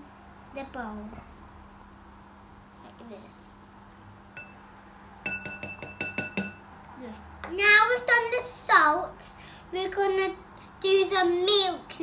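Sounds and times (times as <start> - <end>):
spoon knocking glass bowl: 4.4 - 4.6, 5.2 - 6.6.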